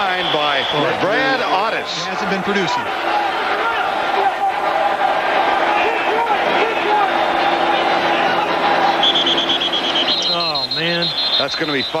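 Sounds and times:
stadium crowd din: 0:00.0 - 0:12.0
shrill trilling whistle: 0:09.0 - 0:12.0.

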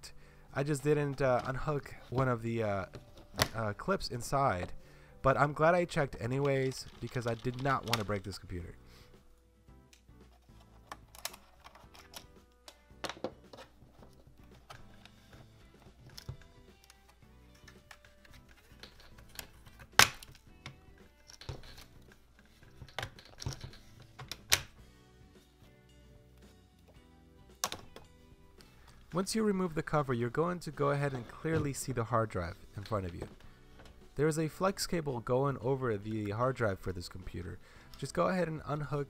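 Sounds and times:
faint background music: 0:00.0 - 0:39.0
plastic case clips snapping: 0:17.6 - 0:24.8.

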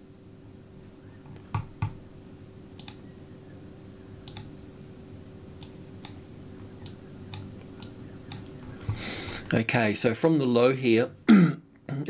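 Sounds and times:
faint steady hum: 0:00.0 - 0:12.0
computer mouse clicks: 0:01.3 - 0:02.0, 0:02.8 - 0:03.0, 0:04.2 - 0:04.5, 0:05.6 - 0:06.2, 0:06.8 - 0:08.6.

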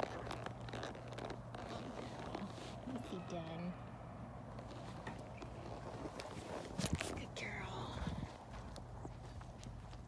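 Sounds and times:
horse steps on dirt: 0:00.0 - 0:03.2.

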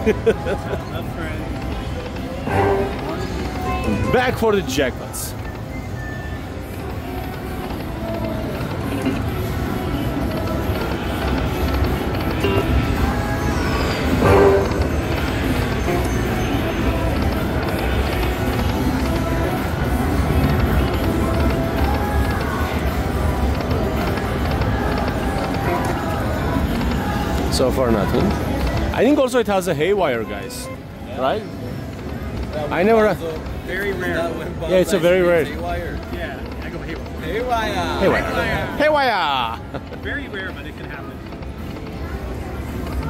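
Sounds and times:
slot machine reel spin sounds: 0:00.1 - 0:43.0
slot machine game music: 0:01.0 - 0:28.2.

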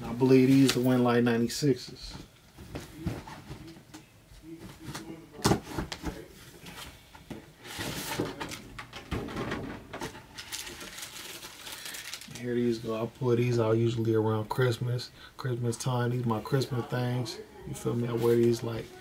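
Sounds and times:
plastic and paper wrapping rustling: 0:00.1 - 0:01.2, 0:07.6 - 0:13.6, 0:18.0 - 0:19.0.

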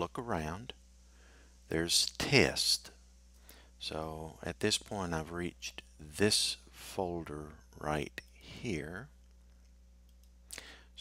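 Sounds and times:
faint low electrical hum: 0:00.0 - 0:11.0.

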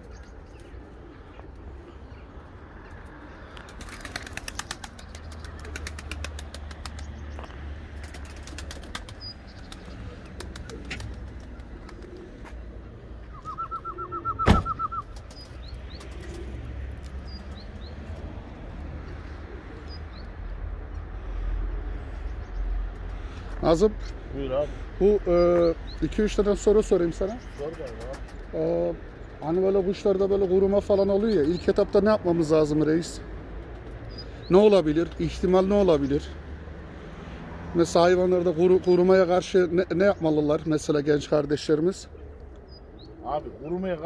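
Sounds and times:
small birds chirping: 0:00.0 - 0:44.0
pigeon wings flapping: 0:03.6 - 0:07.2, 0:07.9 - 0:12.5, 0:14.7 - 0:16.6
sharp knock: 0:14.4 - 0:14.8.

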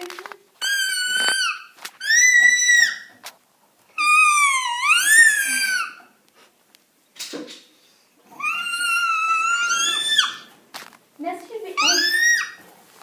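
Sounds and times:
toddler squealing: 0:00.6 - 0:03.2, 0:03.9 - 0:06.2, 0:08.3 - 0:10.5, 0:11.8 - 0:12.6.

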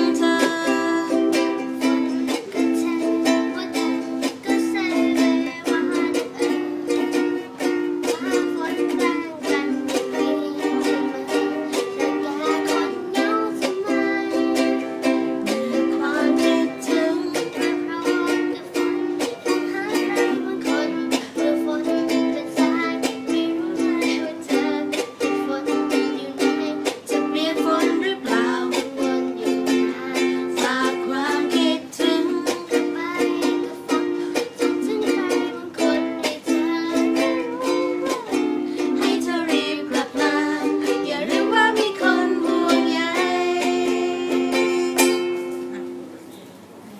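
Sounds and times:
people singing: 0:00.0 - 0:07.0, 0:08.1 - 0:45.4
ukuleles strumming: 0:00.0 - 0:46.4.

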